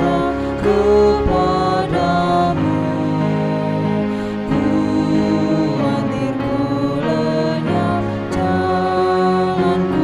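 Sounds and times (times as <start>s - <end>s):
woman and man singing a hymn: 0.0s - 10.0s.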